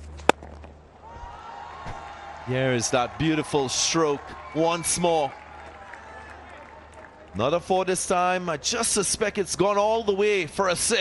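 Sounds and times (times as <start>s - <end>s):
stadium background noise: 0.0s - 11.0s.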